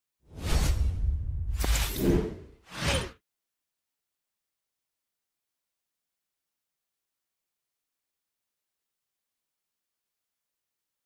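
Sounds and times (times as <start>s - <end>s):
swoosh: 0.3s - 3.2s.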